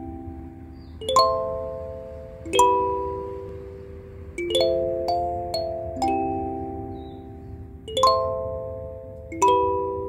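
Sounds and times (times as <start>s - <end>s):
kalimba plucked: 0.0s - 10.0s.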